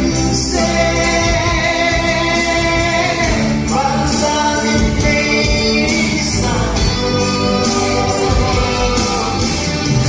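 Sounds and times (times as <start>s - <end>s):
amplified backing music: 0.0s - 10.0s
man singing into a microphone: 0.0s - 10.0s.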